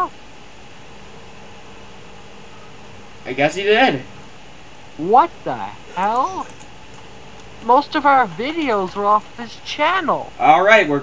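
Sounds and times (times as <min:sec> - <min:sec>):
faint even hum: 0:00.0 - 0:11.0
microphone hiss: 0:00.0 - 0:11.0.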